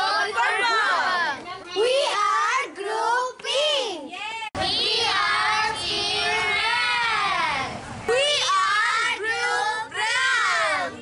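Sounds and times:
children singing together: 4.6s - 10.9s.

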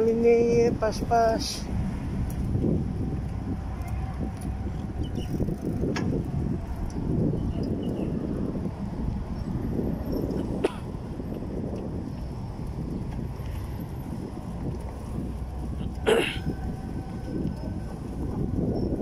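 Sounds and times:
wind on microphone: 0.0s - 19.0s
bicycle tyres rumbling on paving: 1.6s - 19.0s.

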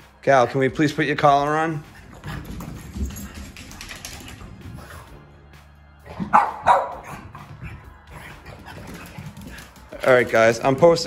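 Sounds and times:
dog barking: 6.3s - 7.2s.

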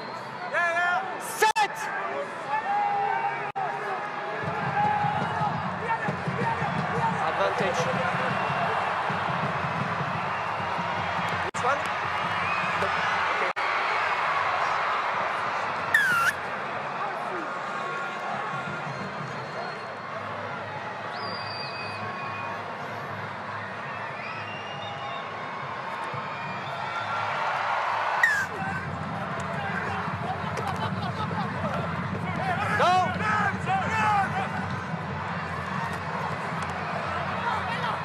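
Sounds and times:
stadium crowd din: 0.0s - 38.0s.

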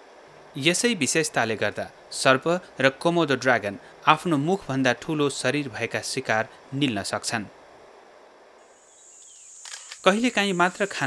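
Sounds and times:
low background hiss: 0.0s - 11.0s
high-pitched insect buzzing: 8.6s - 11.0s.

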